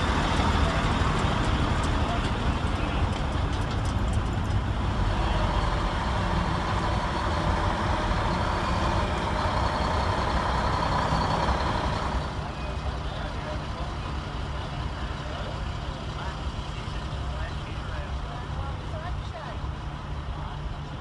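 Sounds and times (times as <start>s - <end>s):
engine running low rumble: 0.0s - 21.0s.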